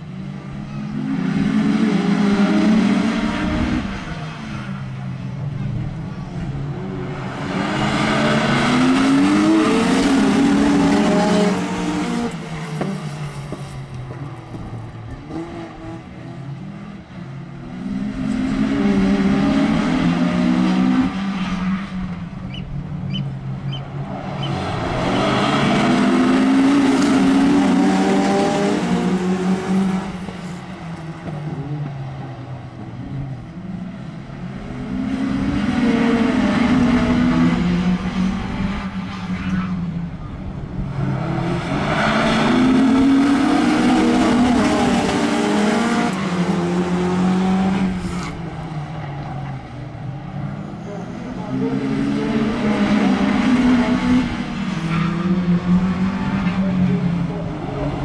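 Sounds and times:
racing car engines passing: 0.0 - 58.0.

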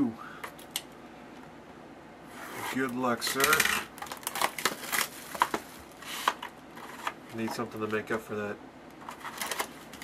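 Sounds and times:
plastic shrink wrap stripping: 2.8 - 7.5, 9.0 - 10.0.

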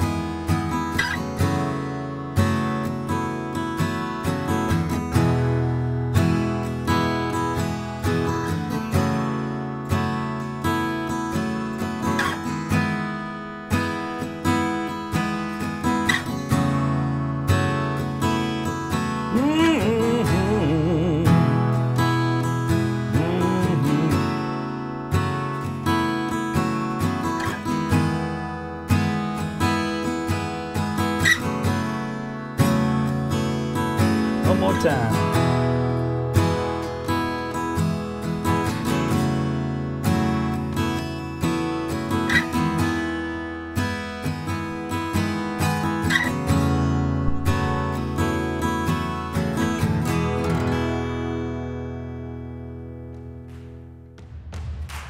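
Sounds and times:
acoustic guitar strummed chords: 0.0 - 54.3.

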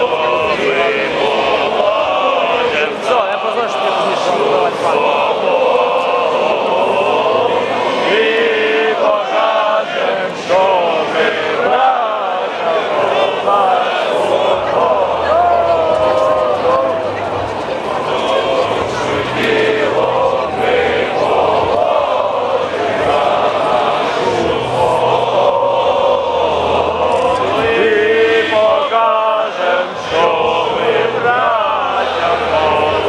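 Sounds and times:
crowd chanting: 0.0 - 33.0.

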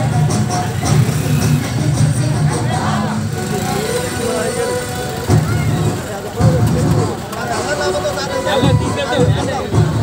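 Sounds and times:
men talking: 2.4 - 10.0.

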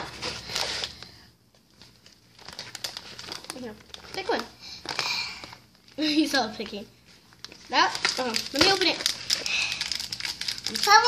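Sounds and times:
wrapped candy crinkling and rattling: 0.0 - 11.0.

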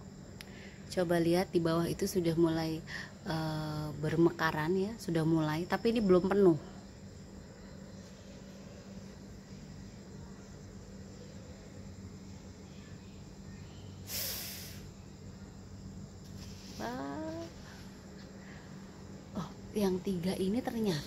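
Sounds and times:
steady low hum: 0.0 - 21.0
short hiss: 14.0 - 15.0.

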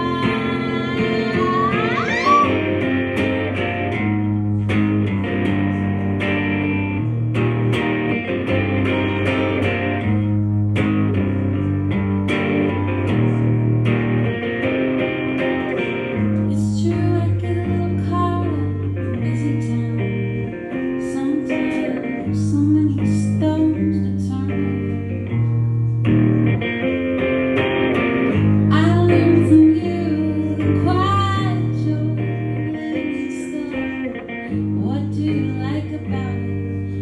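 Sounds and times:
live band with electric guitar: 0.0 - 37.0.

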